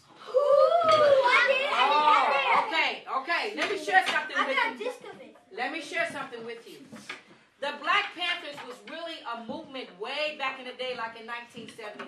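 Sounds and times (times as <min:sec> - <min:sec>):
children calling out: 0:00.2 - 0:02.7.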